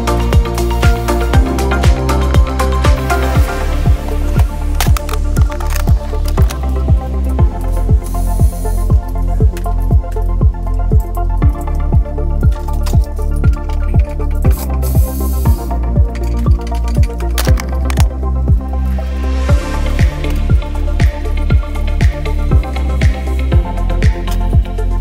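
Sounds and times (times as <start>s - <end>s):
kick drum beat: 0.0s - 5.0s, 5.9s - 18.7s, 19.5s - 24.7s
held bass line: 0.0s - 25.0s.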